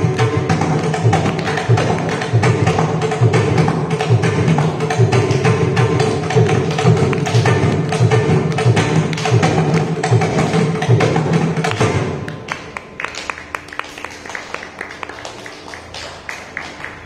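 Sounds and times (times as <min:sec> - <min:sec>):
mridangam drum strokes: 0:00.0 - 0:13.0.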